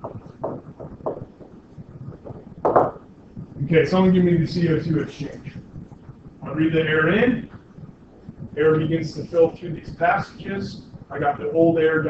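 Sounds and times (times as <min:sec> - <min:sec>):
stylus tapping on tablet screen: 0:00.0 - 0:03.1.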